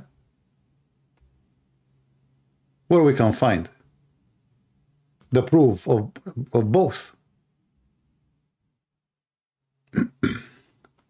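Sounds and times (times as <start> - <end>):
man's throat noises: 9.9 - 10.7.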